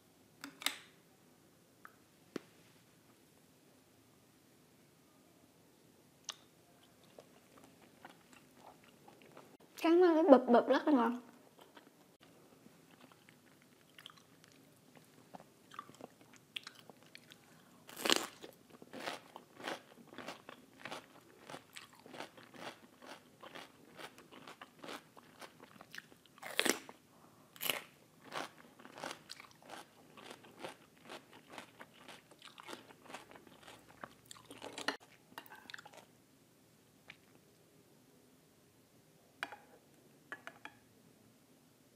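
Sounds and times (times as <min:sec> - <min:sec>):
crisp crunching chews: 0:12.9 - 0:27.0, 0:27.6 - 0:35.0.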